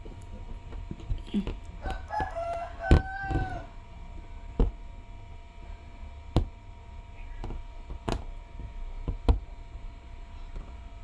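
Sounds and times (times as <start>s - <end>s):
rooster crowing: 1.8s - 3.8s.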